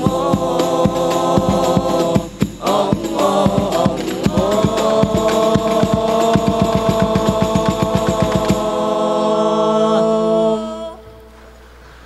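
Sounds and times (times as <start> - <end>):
frame drums in fast rhythm: 0.0 - 9.0
voices holding sung chord: 0.0 - 11.6.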